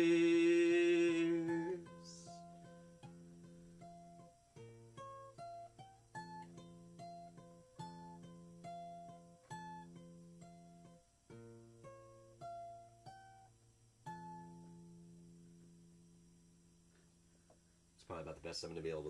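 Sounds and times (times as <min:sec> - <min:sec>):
fingerpicked acoustic guitar: 0:00.0 - 0:19.0.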